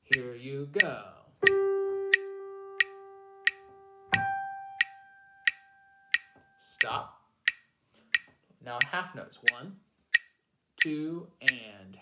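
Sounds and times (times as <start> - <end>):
metronome clicking: 0.0 - 11.7.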